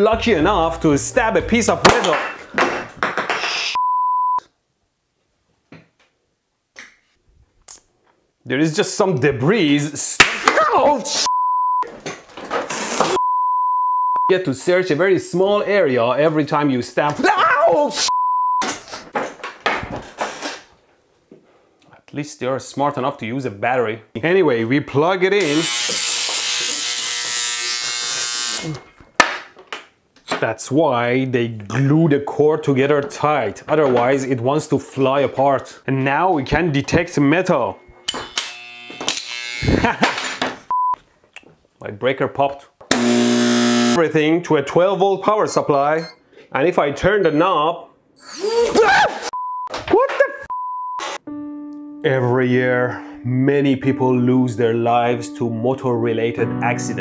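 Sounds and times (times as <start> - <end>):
censor bleep: 3.8 - 4.4, 11.3 - 11.9, 13.2 - 14.3, 18.1 - 18.6, 40.7 - 41.0, 50.5 - 51.0
electromagnet buzzing: 25.4 - 28.8, 38.0 - 40.0, 42.9 - 44.0.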